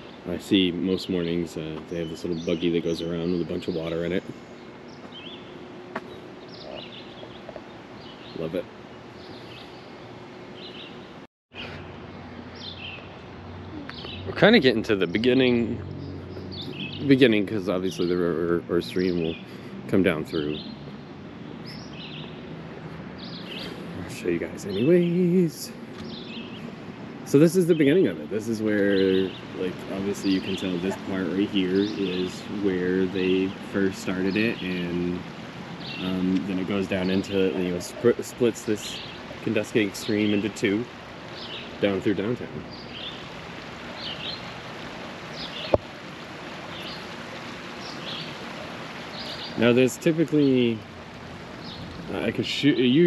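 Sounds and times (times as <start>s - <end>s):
bird chirping: 0.0s - 44.6s, 45.3s - 45.9s, 46.6s - 50.8s, 51.5s - 53.0s
outdoor background noise: 0.0s - 53.0s
high bird chirps: 13.7s - 14.4s
stream water over rocks: 28.6s - 53.0s.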